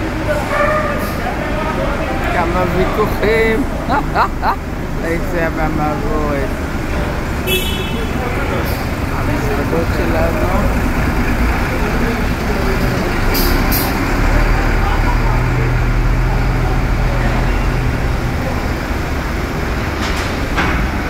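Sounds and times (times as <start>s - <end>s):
truck diesel engine rumble: 0.0s - 21.0s.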